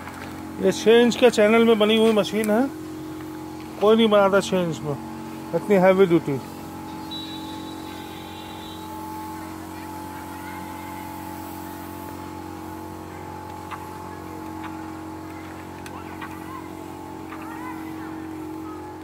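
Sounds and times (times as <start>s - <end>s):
concrete mixer engine running: 0.0s - 19.0s.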